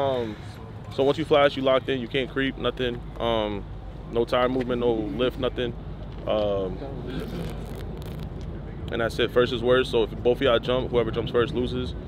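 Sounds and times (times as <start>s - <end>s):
man talking: 0.0s - 7.3s, 8.6s - 12.0s.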